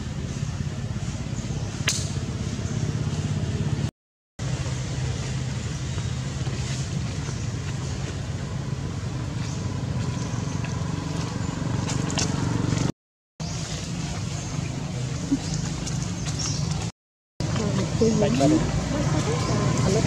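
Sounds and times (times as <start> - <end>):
steady low rumble: 0.0 - 12.9.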